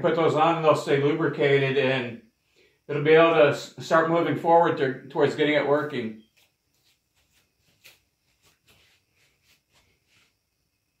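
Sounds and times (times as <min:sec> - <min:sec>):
faint rustles: 0:06.2 - 0:10.6.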